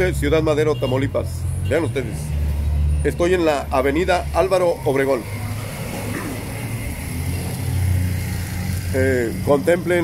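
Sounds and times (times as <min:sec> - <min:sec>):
vehicle engines humming: 0:00.0 - 0:10.0.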